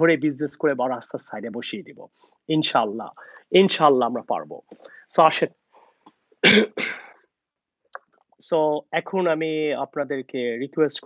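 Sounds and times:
man coughing: 6.4 - 7.2.

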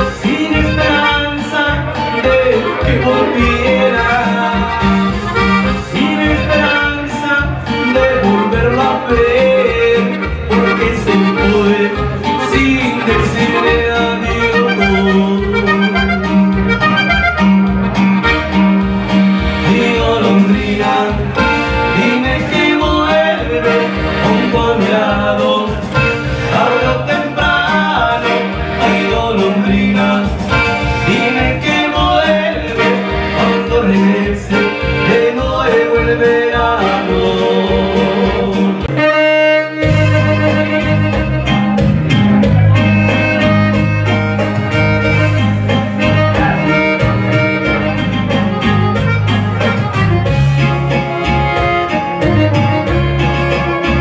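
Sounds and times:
button accordion melody: 0.0 - 54.0
electronic keyboard accompaniment: 0.0 - 54.0
steady beat: 0.0 - 54.0.

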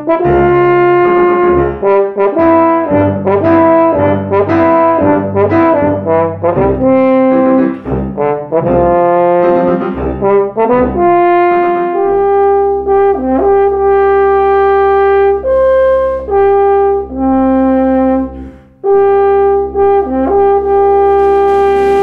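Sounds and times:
french horn melody: 0.0 - 22.0
tuba low line: 0.0 - 22.0.

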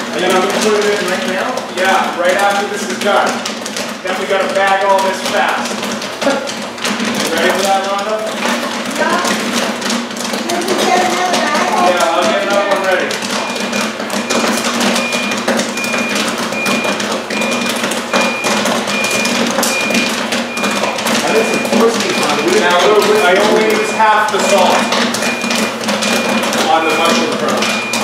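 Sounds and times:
machine beeping: 0.0 - 28.0
popcorn kernels popping: 0.0 - 28.0.

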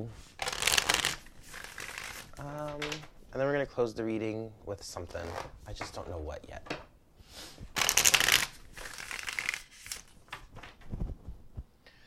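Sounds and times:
cards being shuffled: 0.3 - 3.2, 7.7 - 11.3.

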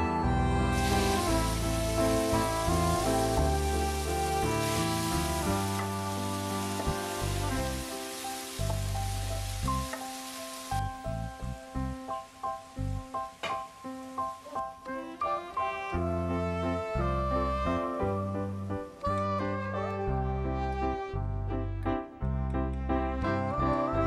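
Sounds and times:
background music: 0.0 - 24.0
mushrooms sizzling in oil: 0.7 - 14.8.

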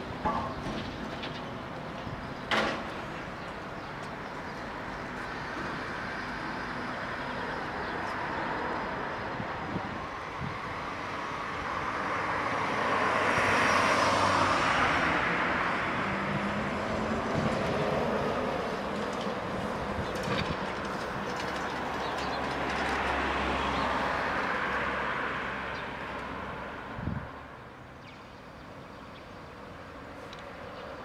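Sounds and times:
street traffic: 0.0 - 31.0
trolleybus driving past: 0.0 - 31.0.

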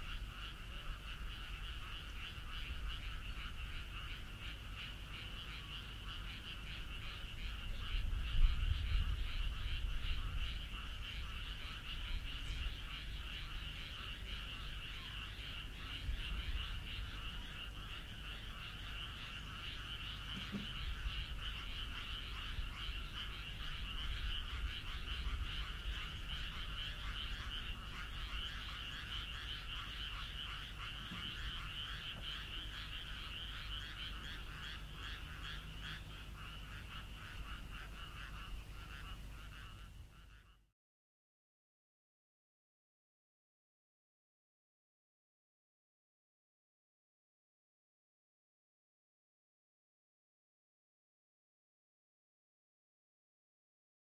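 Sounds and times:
chorus of frogs croaking: 0.0 - 40.7.

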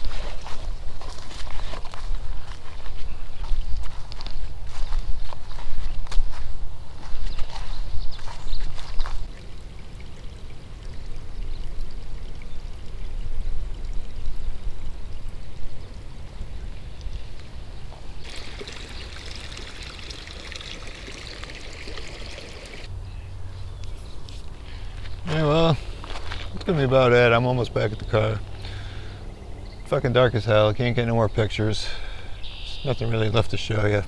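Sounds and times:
trickling water: 0.0 - 5.0, 7.5 - 22.9
footsteps: 0.0 - 9.3.

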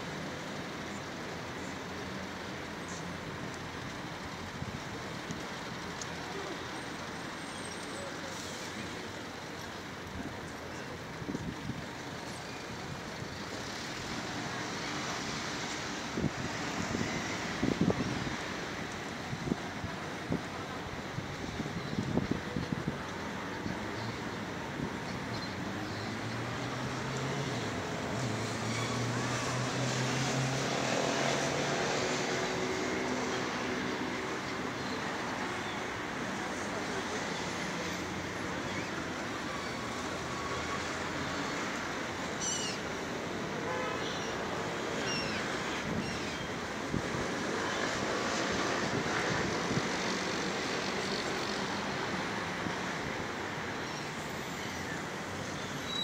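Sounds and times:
urban traffic hum: 0.0 - 56.0.

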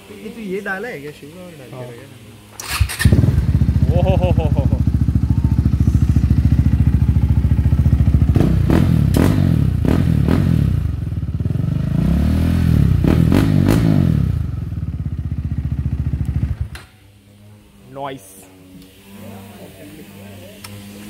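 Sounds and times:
motorcycle engine revving: 2.6 - 16.8
exhaust backfires popping: 2.7 - 16.8.

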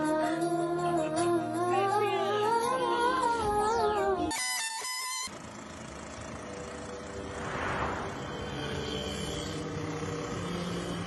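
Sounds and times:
motor scooter engine running: 4.4 - 7.2.

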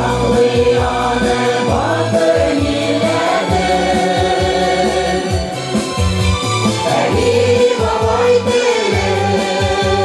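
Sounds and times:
amplified accompaniment with bass: 0.0 - 10.0
mixed choir singing folk song: 0.0 - 10.0.

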